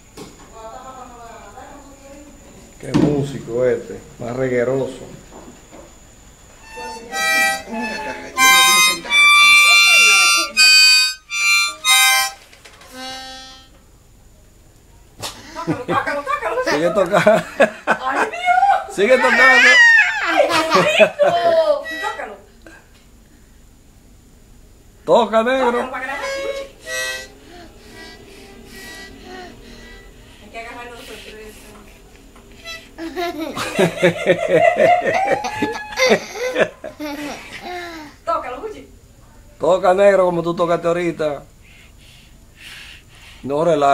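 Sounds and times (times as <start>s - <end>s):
harmonica chord blasts: 6.6s - 13.8s, 21.6s - 22.5s, 26.0s - 31.3s, 32.5s - 33.5s.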